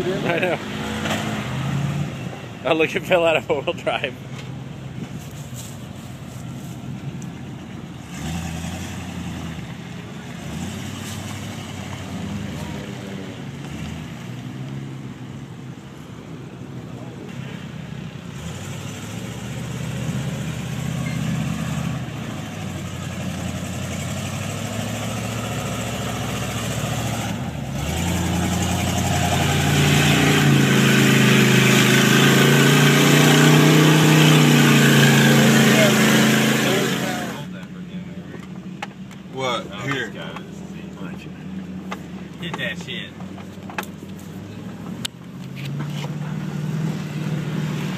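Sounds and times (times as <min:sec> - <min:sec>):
truck engine revving in mud: 0:00.0 - 0:04.0, 0:08.0 - 0:15.2, 0:17.3 - 0:37.5, 0:45.7 - 0:47.9.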